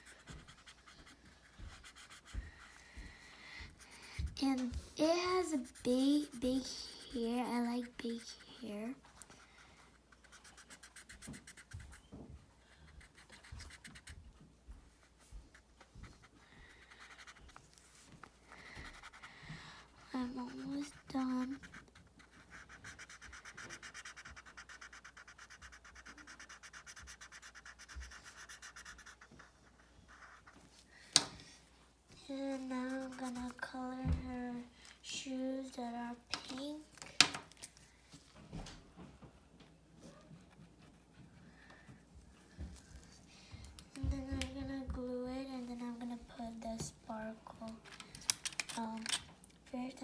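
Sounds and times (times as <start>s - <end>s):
marker scribbling on paper: 0.0s - 2.8s, 3.7s - 12.1s, 12.8s - 18.0s, 18.8s - 30.6s, 32.4s - 33.7s
markers and pencils clicking: 20.0s - 29.2s, 47.8s - 49.2s.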